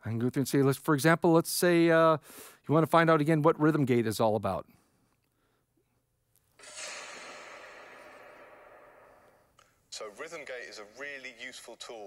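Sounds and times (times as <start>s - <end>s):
airy whoosh: 6.6s - 9.6s.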